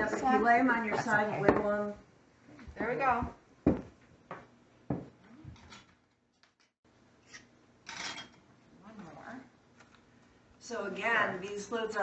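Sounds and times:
hard items knocking on counter: 0:03.6 - 0:05.2.

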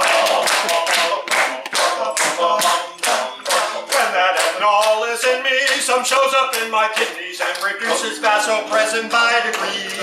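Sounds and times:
hand claps: 0:00.0 - 0:08.1, 0:08.7 - 0:10.0
a cappella group singing: 0:00.0 - 0:10.0.

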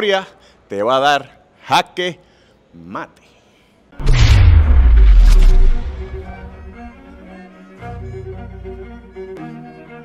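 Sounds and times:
deep cinematic boom: 0:04.0 - 0:07.2.

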